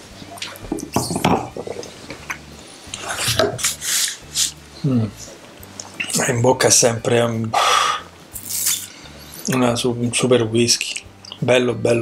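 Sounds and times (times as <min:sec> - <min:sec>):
glass knocking on wooden table: 0:00.7 - 0:01.9.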